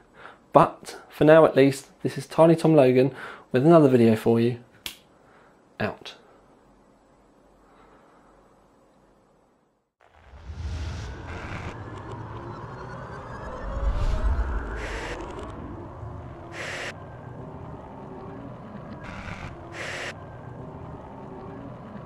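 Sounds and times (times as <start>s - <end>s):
whooshes: 10.0s - 17.0s
low rumble: 10.0s - 22.0s
gliding tones: 10.3s - 22.0s.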